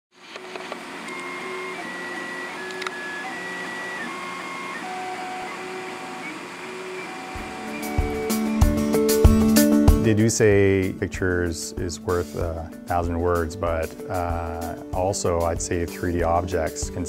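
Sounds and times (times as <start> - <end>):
printer stepper motors whining: 0.3 - 9.5
music with low beats: 7.4 - 17.0.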